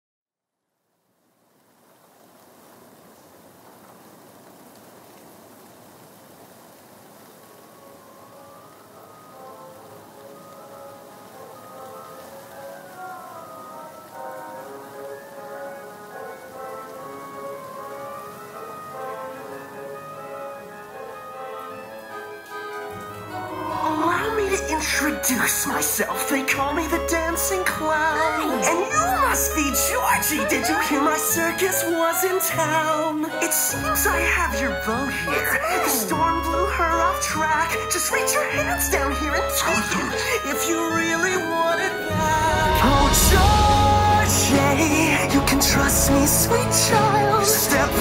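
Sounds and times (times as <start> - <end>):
rain sound effect: 0.5 - 48.0.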